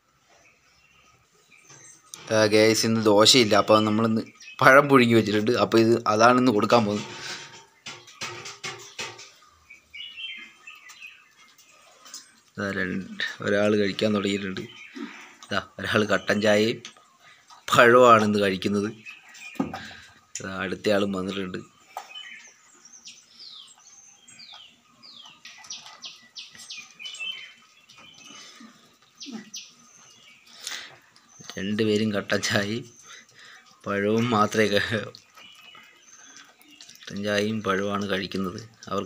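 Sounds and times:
small birds chirping: 0.0 - 39.0.

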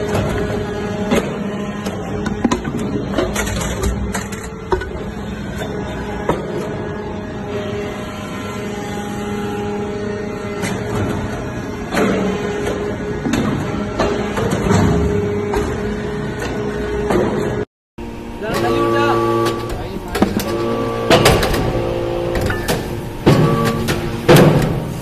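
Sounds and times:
hydraulic power unit hum: 0.0 - 25.0.

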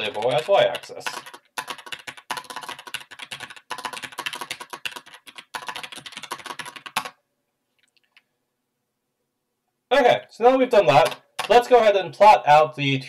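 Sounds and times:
fast keyboard typing: 0.0 - 7.2, 10.9 - 11.8.

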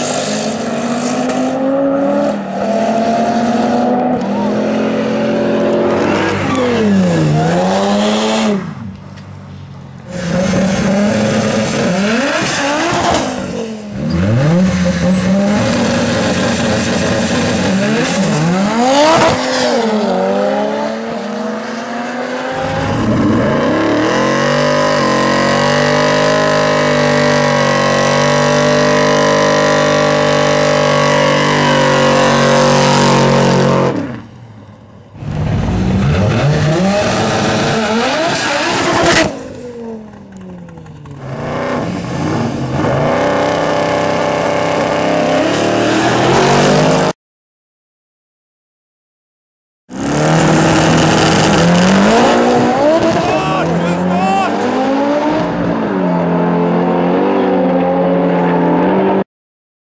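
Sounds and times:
cars accelerating: 0.0 - 9.0, 10.1 - 34.3, 35.2 - 47.1, 49.9 - 59.2
car engines revving: 0.0 - 47.1, 49.9 - 59.2.

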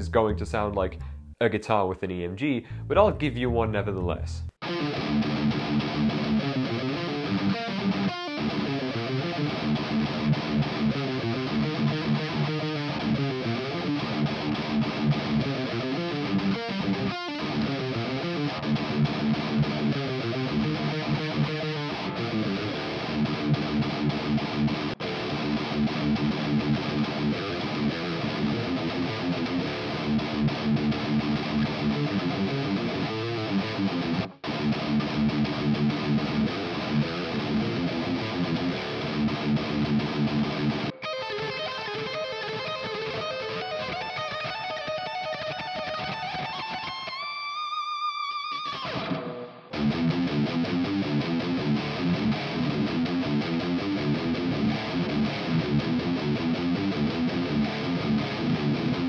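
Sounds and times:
distorted electric guitar riffing: 2.6 - 59.0.

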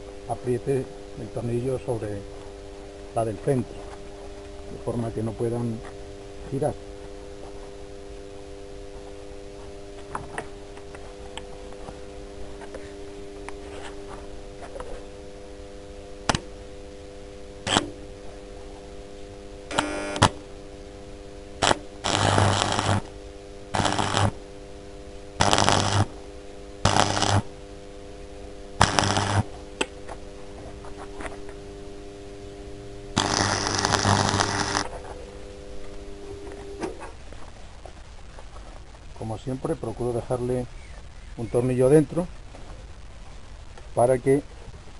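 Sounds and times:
steady hum: 0.0 - 44.9
arc welder crackle: 17.6 - 18.1, 19.6 - 20.5, 21.6 - 24.5, 25.2 - 27.6, 28.8 - 31.7, 33.1 - 39.2.

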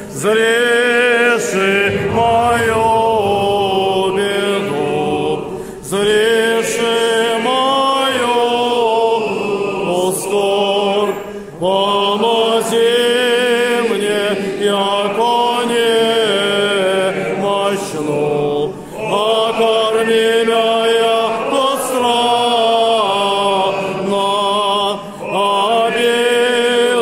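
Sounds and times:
men's choir chanting a cappella: 0.0 - 27.0.

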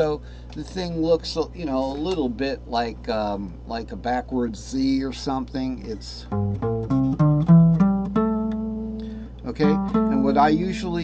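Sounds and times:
guitar playing rising scale: 6.3 - 11.0.

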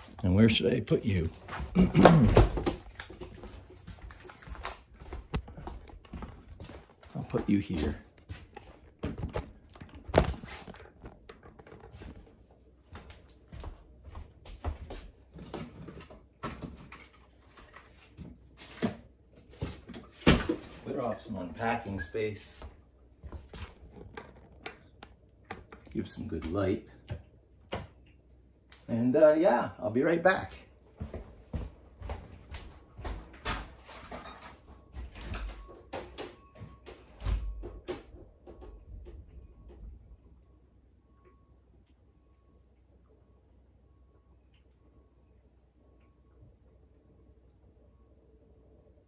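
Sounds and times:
man clearing throat: 1.7 - 2.6.

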